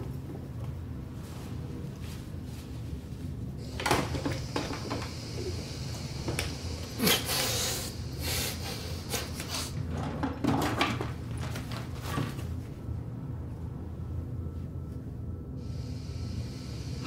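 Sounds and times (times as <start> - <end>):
knocks and clatters: 9.8 - 12.5.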